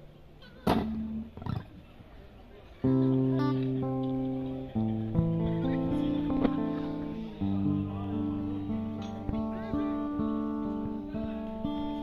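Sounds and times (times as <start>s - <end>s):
percussive guitar hits: 0.6s - 1.7s, 5.2s - 7.0s
fingerstyle acoustic guitar: 0.6s - 1.9s, 2.8s - 12.0s.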